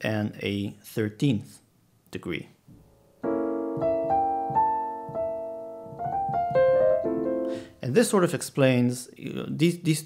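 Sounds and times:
single piano notes: 2.7s - 7.6s
piano chord held: 2.8s - 7.7s.

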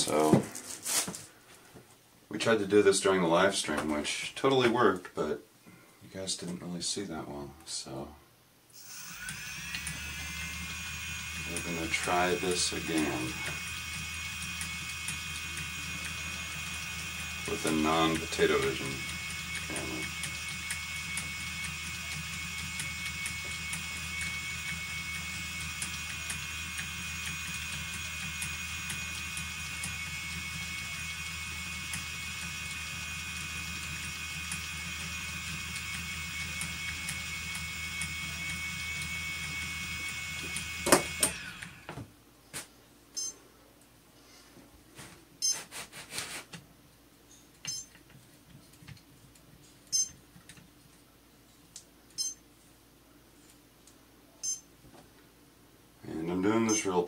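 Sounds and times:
spinning wheel motor whine: 8.8s - 42.0s.

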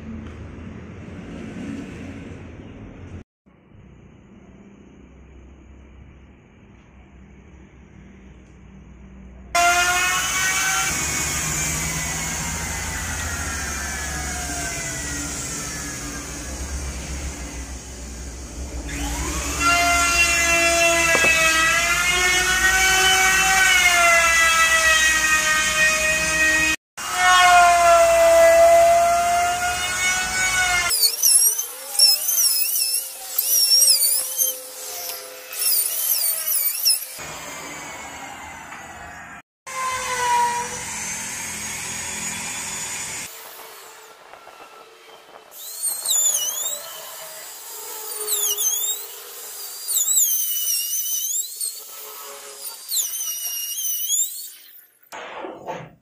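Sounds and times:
power tool motor whine: 9.6s - 54.8s.

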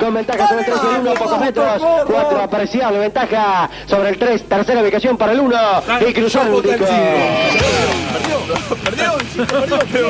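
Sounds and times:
excited race commentary voices: 0.1s - 2.6s.

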